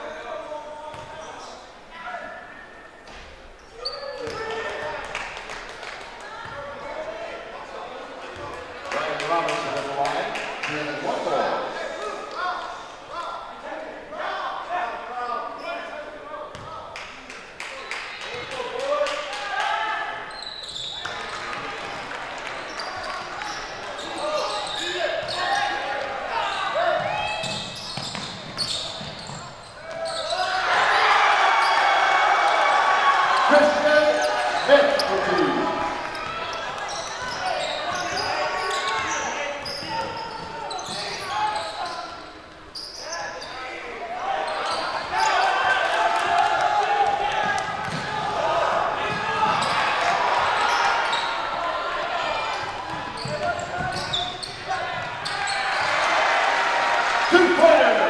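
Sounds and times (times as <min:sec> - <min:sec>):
crowd and player voices: 0:00.0 - 0:58.0.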